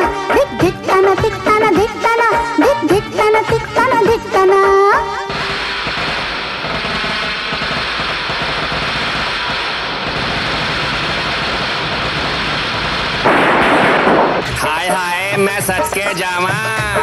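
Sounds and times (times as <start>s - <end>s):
loud rushing burst: 5.2s - 14.9s
firecrackers crackling and popping: 5.2s - 17.0s.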